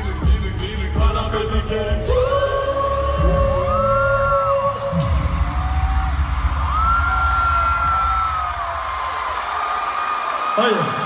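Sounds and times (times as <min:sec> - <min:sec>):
heavy bass: 0:00.0 - 0:08.9
live concert music: 0:00.0 - 0:09.7.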